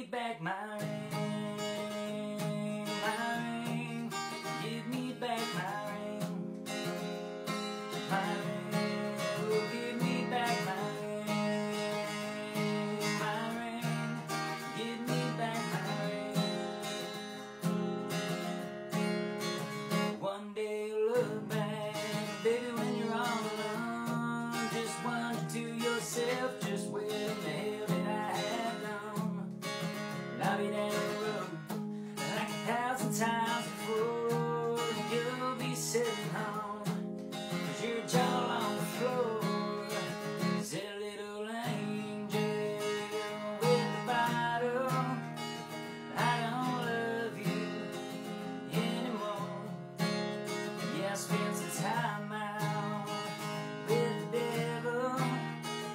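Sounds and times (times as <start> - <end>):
acoustic guitar strummed and picked: 0.0 - 55.9
man singing country song: 0.0 - 55.9.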